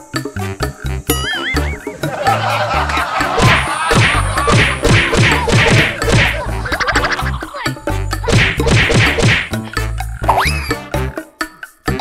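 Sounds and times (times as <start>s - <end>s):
comedic background music: 0.0s - 12.0s
cartoon whack hits: 3.4s - 6.5s, 8.2s - 9.6s.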